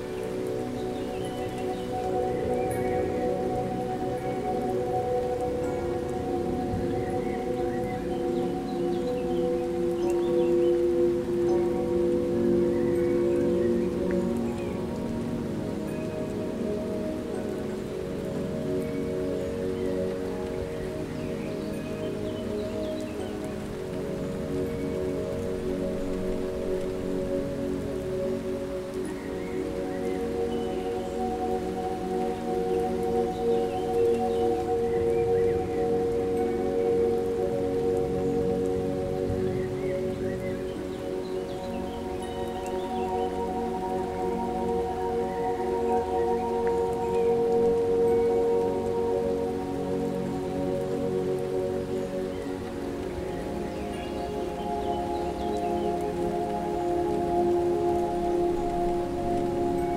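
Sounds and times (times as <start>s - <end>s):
ambient drone of held chords: 0.0s - 59.9s
steady rain: 0.0s - 59.9s.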